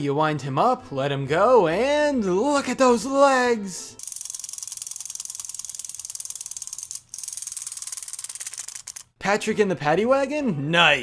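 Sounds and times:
wind-up toy gears clicking: 4.0s - 9.1s.

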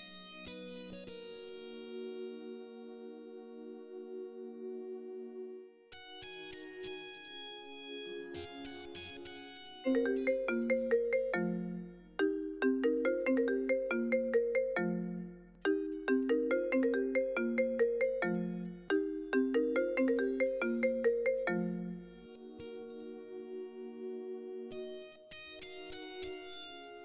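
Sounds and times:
phone ringtone tune: 9.9s - 22.3s
soft background music: 9.9s - 25.3s.

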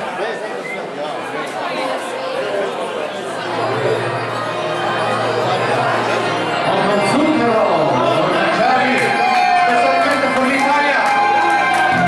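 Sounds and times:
crowd chatter in a hall: 0.0s - 12.0s.

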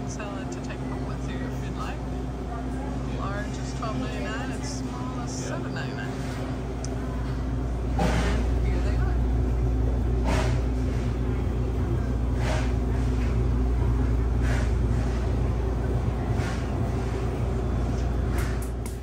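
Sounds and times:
refrigerated display case humming: 0.0s - 19.0s.

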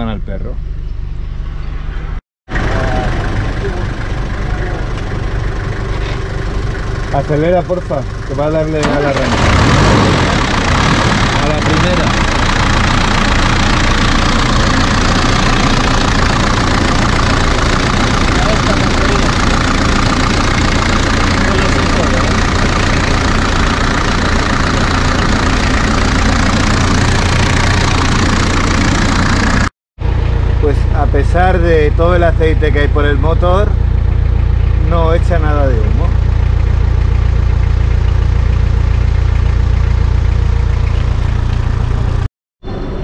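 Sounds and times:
diesel engine running: 0.0s - 43.0s.

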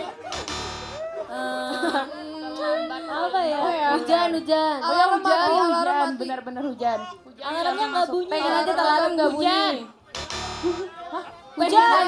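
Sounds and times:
game show buzzer tone: 0.4s - 1.0s, 10.2s - 10.9s.

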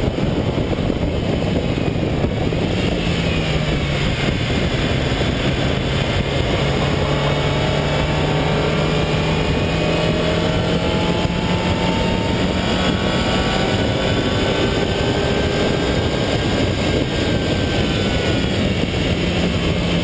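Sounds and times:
car engine accelerating: 0.0s - 20.0s
wind and road noise: 0.0s - 20.0s.

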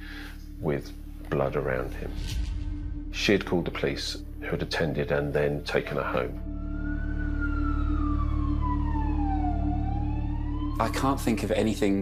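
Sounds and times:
steady low drone: 0.0s - 11.7s
police siren wailing: 6.4s - 11.8s.

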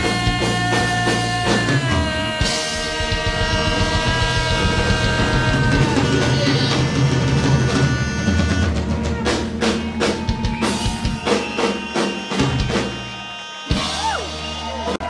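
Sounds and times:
drum and cymbal hits: 0.0s - 15.0s
rock band playing: 0.0s - 15.0s.

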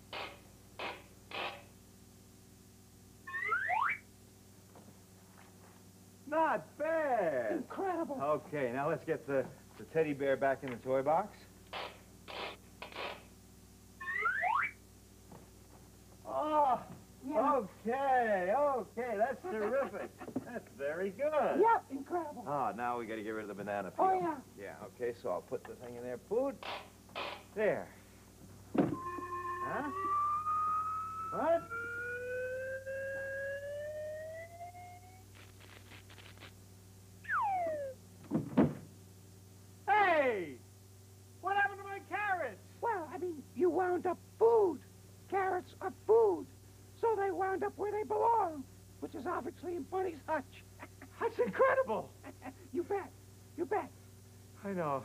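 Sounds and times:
rising whistle sound effect: 3.3s - 4.0s, 14.0s - 14.8s, 28.9s - 35.2s, 37.2s - 38.0s
short thump: 28.7s - 29.0s, 38.2s - 38.9s.

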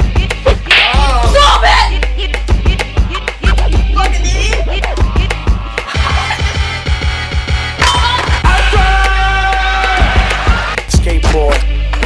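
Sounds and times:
background music with fast beat: 0.0s - 12.0s.

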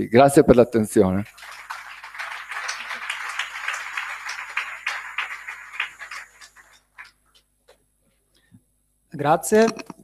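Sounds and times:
audience applauding: 1.2s - 7.2s.

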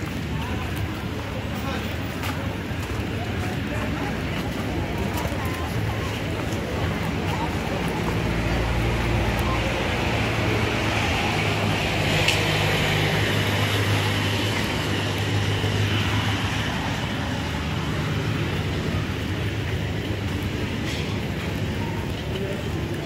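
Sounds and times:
road noise: 0.0s - 23.0s.

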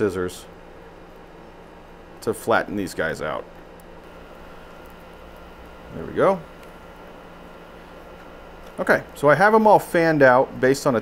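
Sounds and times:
room noise hum and hiss: 0.0s - 11.0s
wire rustling and ticking: 0.5s - 10.0s.

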